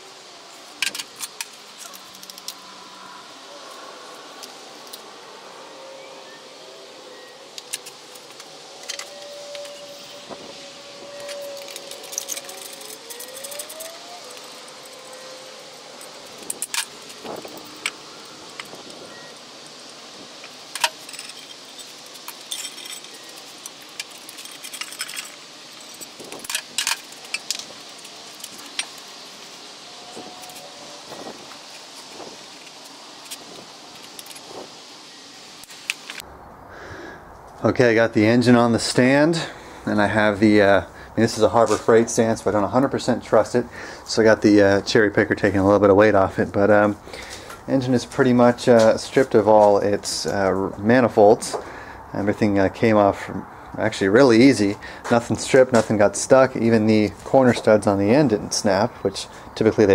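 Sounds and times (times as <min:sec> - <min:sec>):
wrench clinking on metal bolts: 0:20.7 - 0:29.0.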